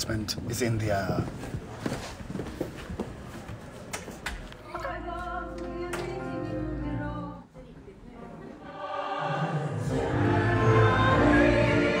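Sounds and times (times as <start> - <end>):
shuffling handling noise: 0.4 - 4.5.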